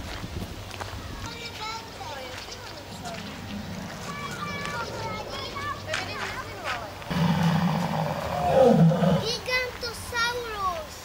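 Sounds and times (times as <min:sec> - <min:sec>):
dinosaur roar from loudspeaker: 0:07.1 - 0:09.3.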